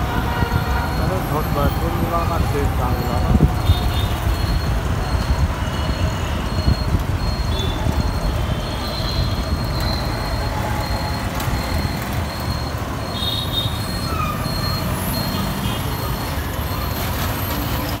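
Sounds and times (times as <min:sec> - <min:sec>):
traffic engine rumble: 0:00.0 - 0:18.0
short high-pitched beep: 0:03.6 - 0:16.8.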